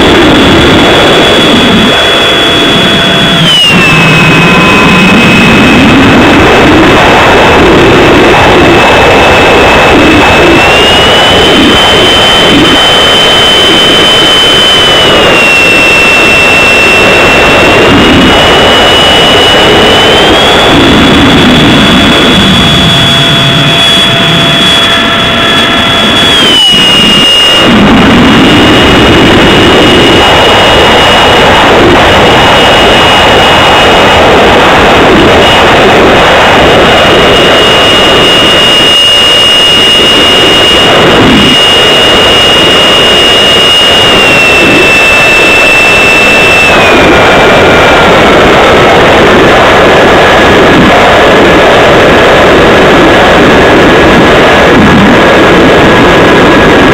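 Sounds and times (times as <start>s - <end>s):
electric motor and propeller whine: 0.0s - 56.9s
rushing wind noise: 0.0s - 56.9s.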